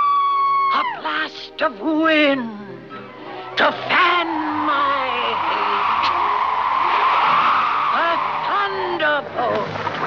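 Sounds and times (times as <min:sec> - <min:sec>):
faint orchestral music: 0:00.0 - 0:10.0.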